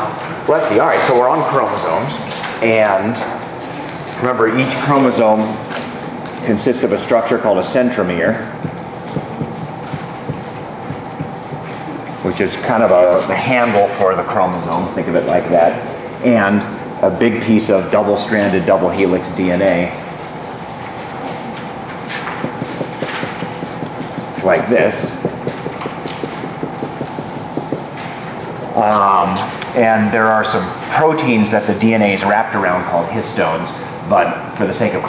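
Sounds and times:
room noise hiss: 0:00.0 - 0:35.0
marker writing on whiteboard: 0:08.6 - 0:11.8, 0:21.5 - 0:28.7.

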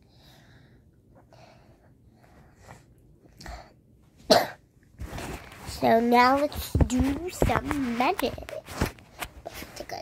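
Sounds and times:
person coughing: 0:04.3 - 0:04.6.

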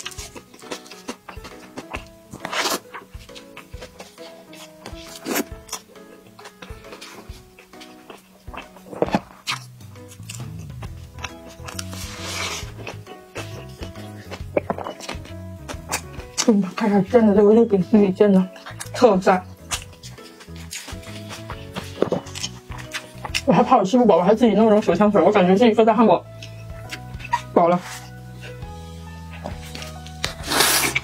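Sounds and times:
chewing a hamburger: 0:00.0 - 0:16.8, 0:18.4 - 0:23.5, 0:26.3 - 0:31.0
background music with melody: 0:00.0 - 0:31.0.

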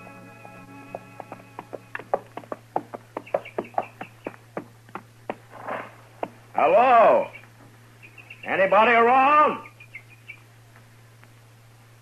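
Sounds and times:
held musical chord: 0:00.0 - 0:02.0
horse hoofbeats clip-clop: 0:00.4 - 0:06.4.

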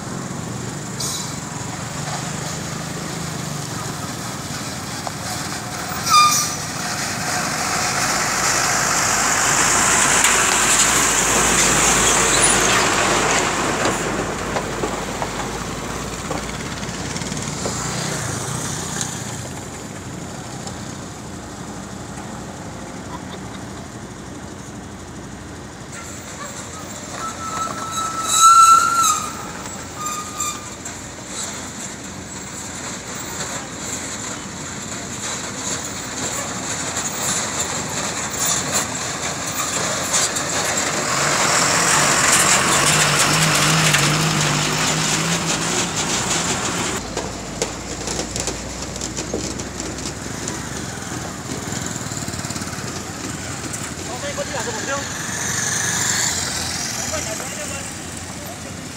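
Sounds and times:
cars passing on a road: 0:00.0 - 0:58.9
engine: 0:00.0 - 0:58.9.

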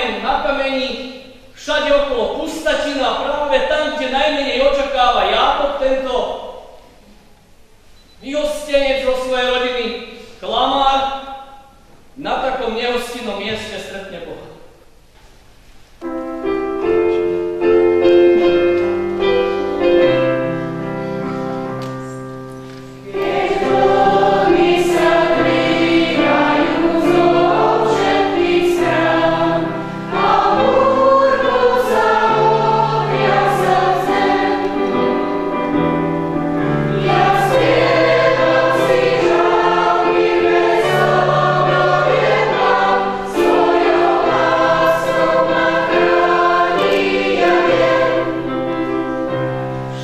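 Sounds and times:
church choir singing a hymn: 0:16.8 - 0:50.0.

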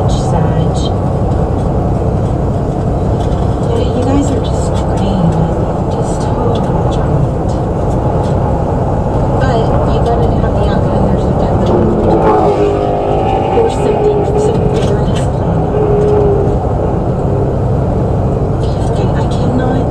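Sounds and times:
car road and engine noise: 0:00.0 - 0:19.9.

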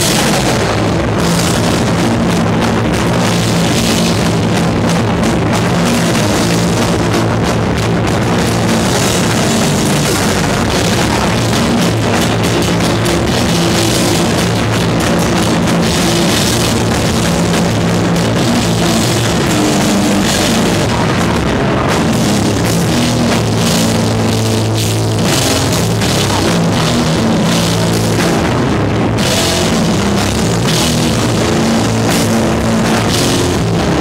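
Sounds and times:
bass guitar: 0:00.0 - 0:34.0
distorted electric guitar: 0:00.0 - 0:34.0
fast drums: 0:00.0 - 0:34.0.

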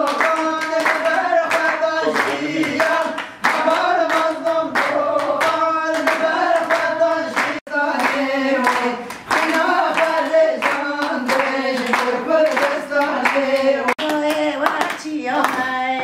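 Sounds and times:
hands clapping in a beat: 0:00.0 - 0:15.8
women singing together: 0:00.0 - 0:16.0.

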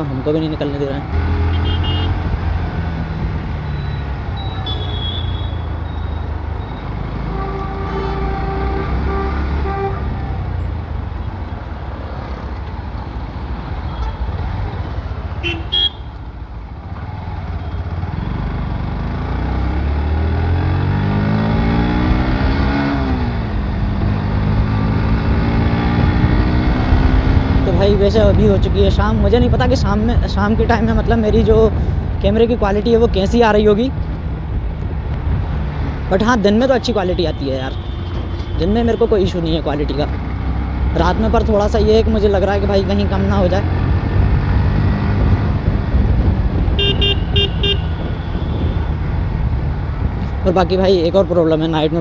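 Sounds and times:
vehicle horn: 0:01.3 - 0:02.2, 0:04.5 - 0:05.7, 0:07.2 - 0:10.4, 0:15.4 - 0:16.1, 0:37.7 - 0:38.7, 0:46.8 - 0:48.9
wind noise: 0:21.8 - 0:36.4, 0:43.4 - 0:50.8.

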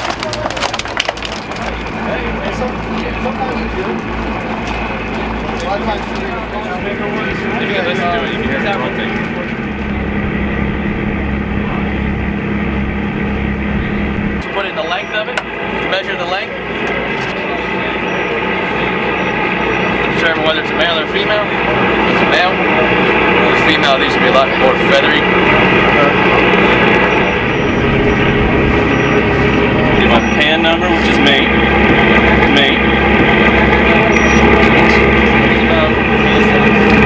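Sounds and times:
boat engine droning: 0:00.0 - 0:37.0
deck machinery hum: 0:00.0 - 0:37.0
short high beep: 0:34.1 - 0:34.7.

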